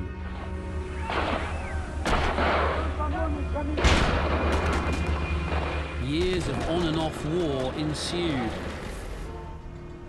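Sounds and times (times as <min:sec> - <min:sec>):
low music drone: 0:00.0 - 0:10.0
heavy gunfire blasts: 0:06.1 - 0:08.8.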